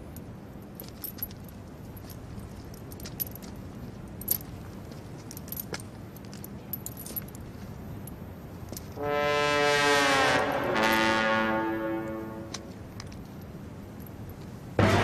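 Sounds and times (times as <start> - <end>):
low background noise: 0.0 - 15.0
iron chain clinking: 0.2 - 9.0.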